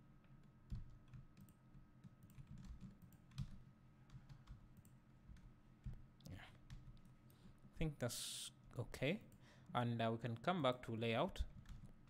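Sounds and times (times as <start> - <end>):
computer keyboard and mouse clicks: 0.2 - 6.0, 11.5 - 12.0.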